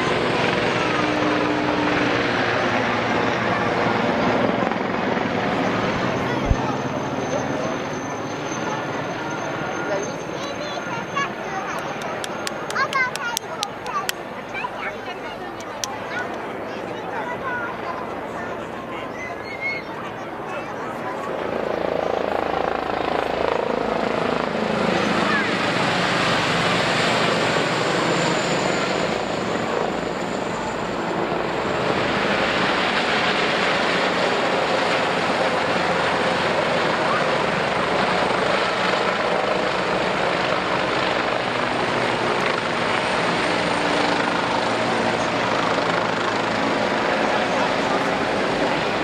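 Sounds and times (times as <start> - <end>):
helicopter flying low past: 0.0 - 49.0.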